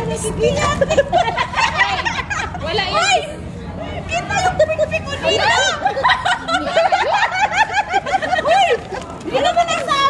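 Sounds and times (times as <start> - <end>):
women laughing: 0.5 - 3.3, 4.2 - 9.6.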